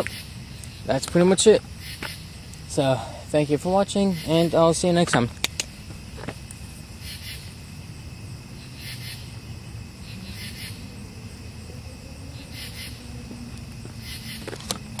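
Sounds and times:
insects chirping: 0:00.0 - 0:15.0
steady low rumble: 0:00.0 - 0:15.0.

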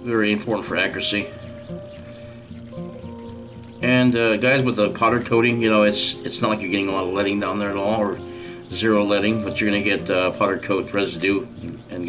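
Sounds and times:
soft background music: 0:00.0 - 0:12.0
man talking: 0:03.8 - 0:12.0.

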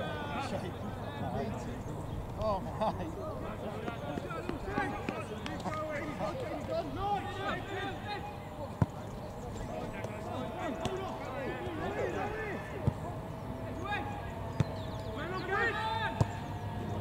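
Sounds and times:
players calling: 0:00.0 - 0:17.0
football being kicked: 0:16.2 - 0:16.5.

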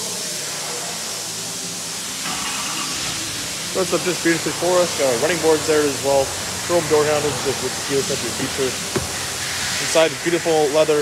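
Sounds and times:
diesel engine idling: 0:02.3 - 0:09.8.

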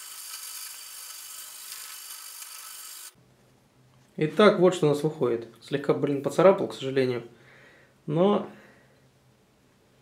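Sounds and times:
sandpaper rubbing on steel blade: 0:00.0 - 0:03.2.

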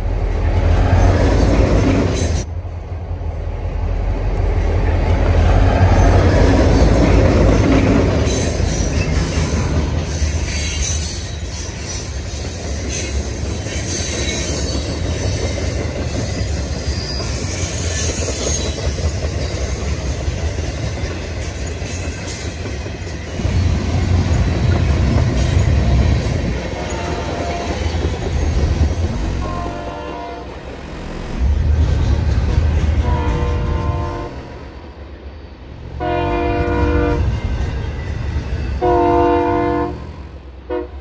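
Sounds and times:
freight train rumbling past: 0:00.0 - 0:41.0.

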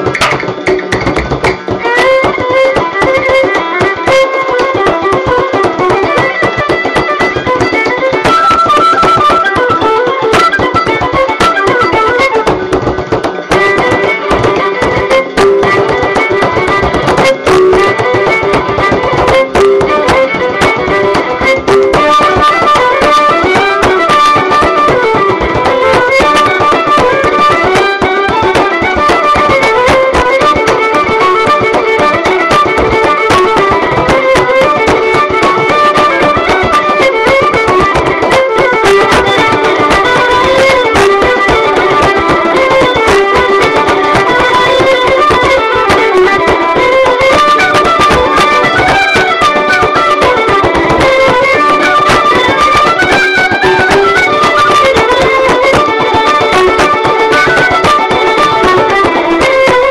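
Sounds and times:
bodhran drum beating: 0:00.0 - 0:59.9
fiddle-led folk tune recording: 0:00.0 - 0:59.9.

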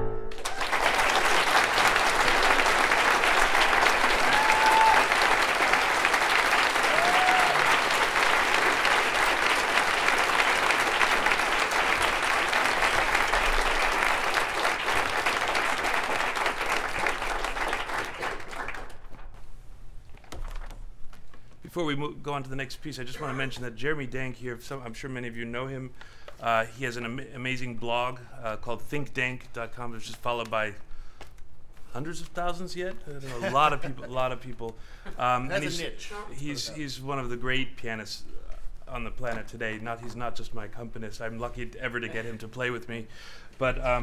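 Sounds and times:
piano notes: 0:00.0 - 0:00.9
audience applauding: 0:00.3 - 0:19.3.

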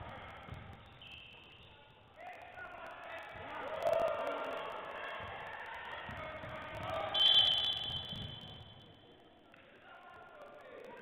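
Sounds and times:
referee's whistle blast: 0:07.1 - 0:08.8.

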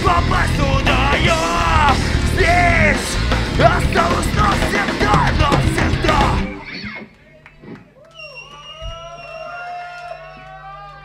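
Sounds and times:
electric guitar ringing: 0:00.0 - 0:07.4
low amp hum: 0:00.0 - 0:08.0.

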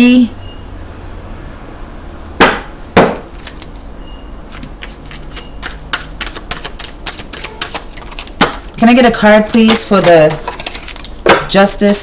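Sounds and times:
sharp knocks: 0:02.4 - 0:03.3
cards being shuffled: 0:04.5 - 0:11.2.

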